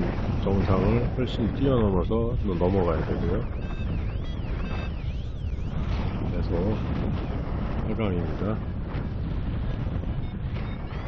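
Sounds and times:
wind on microphone: 0.0s - 11.0s
siren-like alarm tone sweeping: 0.3s - 8.5s, 10.0s - 11.0s.

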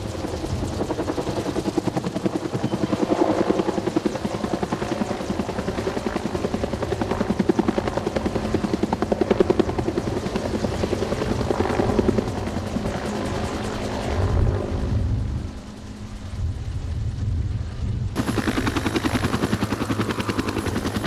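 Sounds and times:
helicopter rotor blades beating: 0.0s - 21.0s.

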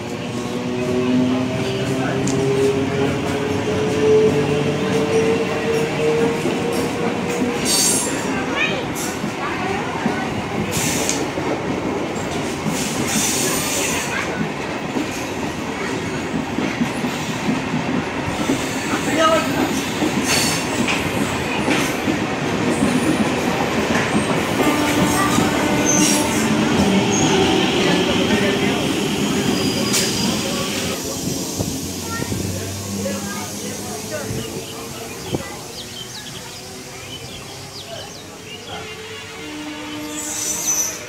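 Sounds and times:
train wheels rumbling on rails: 0.0s - 41.0s.

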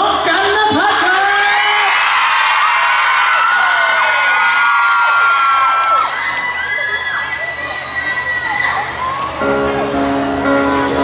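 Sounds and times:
audience cheering and screaming: 1.2s - 11.0s.

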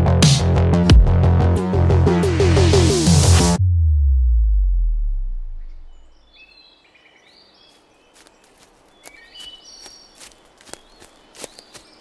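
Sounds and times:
low falling bass tone: 0.0s - 6.3s.

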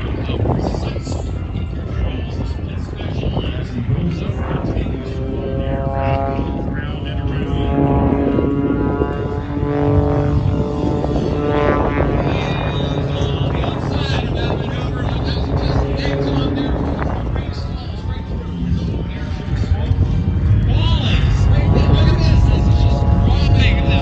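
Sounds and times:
propeller plane engine overhead: 0.0s - 24.0s.

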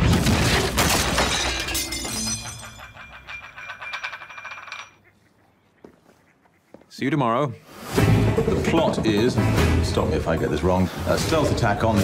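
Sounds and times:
crockery and glassware crashing: 0.1s - 5.0s.

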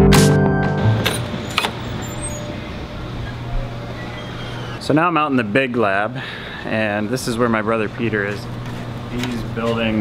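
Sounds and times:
low mechanical hum: 1.0s - 10.0s.

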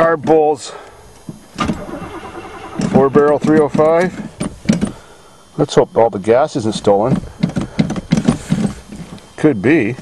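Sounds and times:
engine starter cranking: 1.6s - 3.6s.

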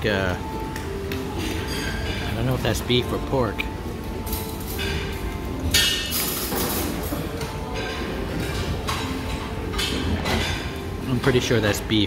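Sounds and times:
restaurant dining room background noise: 0.0s - 12.0s.

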